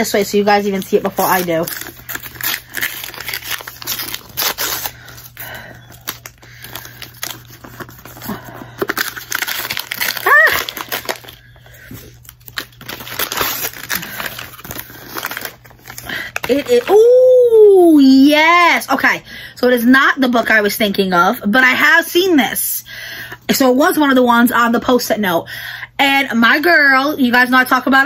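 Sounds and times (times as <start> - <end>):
paper wrapping tearing and crinkling: 0.0 - 17.2.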